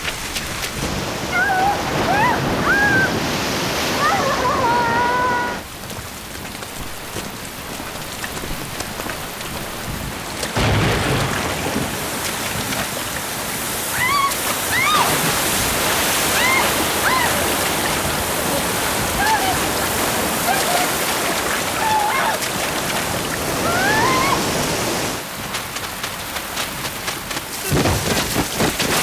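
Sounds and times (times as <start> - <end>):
heavy rain: 0.0 - 29.0
rushing floodwater: 0.0 - 29.0
high voice cries: 1.3 - 3.2, 4.0 - 5.6, 16.4 - 18.0, 19.1 - 21.1, 21.7 - 22.4, 23.6 - 24.5.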